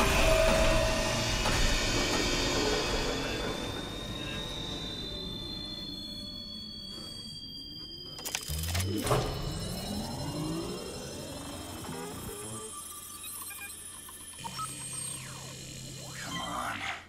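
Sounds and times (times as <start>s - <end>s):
rising electronic sweeps: 0.0s - 16.8s.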